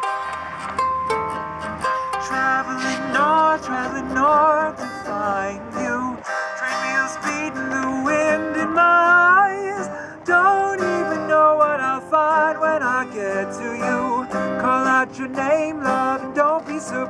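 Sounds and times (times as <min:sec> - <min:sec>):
acoustic guitar and ukulele strumming: 0:00.0 - 0:17.0
person singing: 0:01.8 - 0:17.0.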